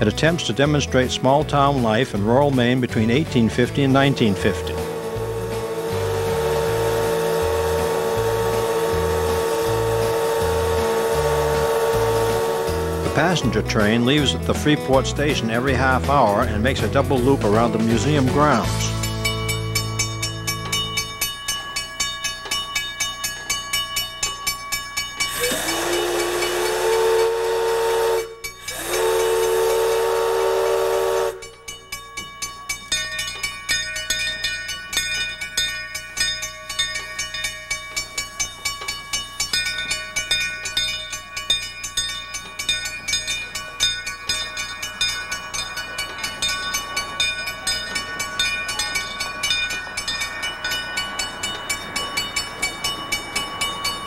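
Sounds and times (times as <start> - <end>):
railroad crossing bell ringing: 0.0 - 54.0
steam locomotive whistle: 2.3 - 14.3, 25.2 - 31.8.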